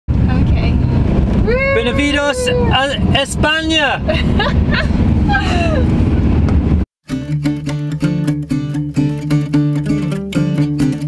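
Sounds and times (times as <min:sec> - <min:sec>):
engine and road rumble: 0:00.1 - 0:10.0
man speaking: 0:01.7 - 0:04.1.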